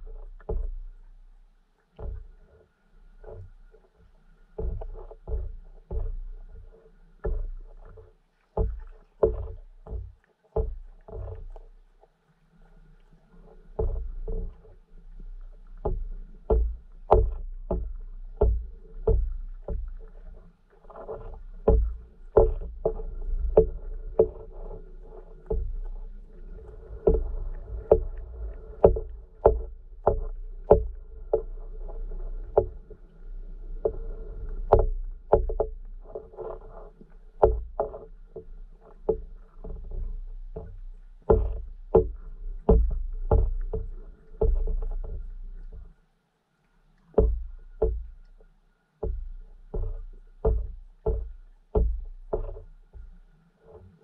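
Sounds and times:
muffled underwater knocks and clicks: 0.0s - 46.0s, 46.6s - 54.0s
low underwater rumble: 0.0s - 54.0s.

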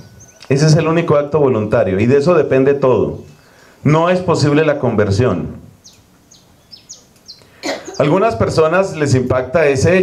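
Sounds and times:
high bird chirps: 0.0s - 0.5s, 5.8s - 8.2s
man's voice: 0.5s - 5.7s, 8.0s - 10.0s.

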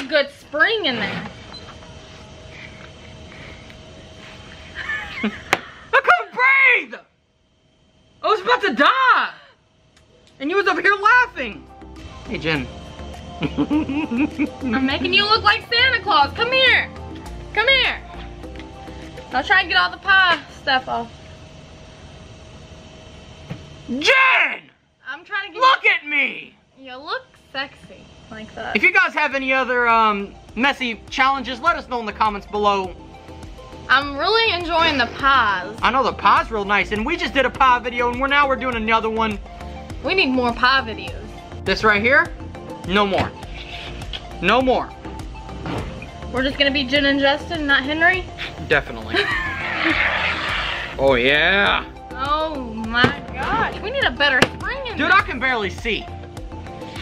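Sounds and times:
background hiss and hum: 0.0s - 57.0s
faint steady whine: 0.0s - 57.0s
person laughing: 4.6s - 6.0s, 13.4s - 14.9s, 49.1s - 50.5s
shaving cream spraying hiss: 49.4s - 51.0s.

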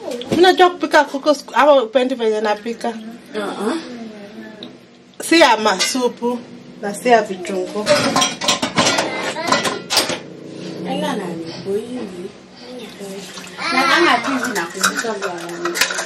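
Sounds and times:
kitchen items clinking on glass bowl: 7.8s - 10.3s, 13.9s - 16.0s
water pouring into bowl: 12.8s - 15.0s.

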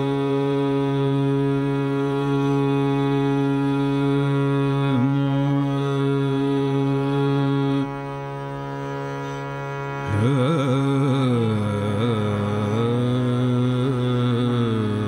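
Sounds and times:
man singing long note: 0.0s - 8.6s, 10.0s - 15.0s.

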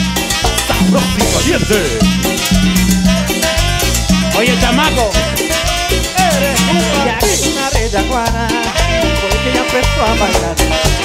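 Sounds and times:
live cumbia band music: 0.0s - 11.0s.

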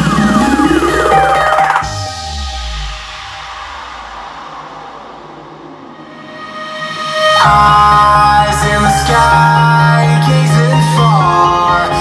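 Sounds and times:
music with heavy bass: 0.0s - 12.0s.

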